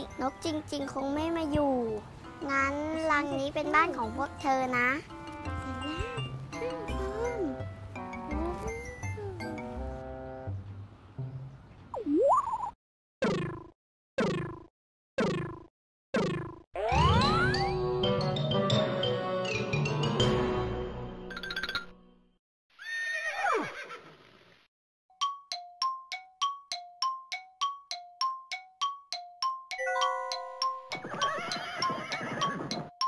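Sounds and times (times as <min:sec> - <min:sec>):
cartoon horse whinny: 0:22.8 - 0:24.2, 0:31.0 - 0:32.8
two-pitch ringing dings: 0:29.8 - 0:31.0.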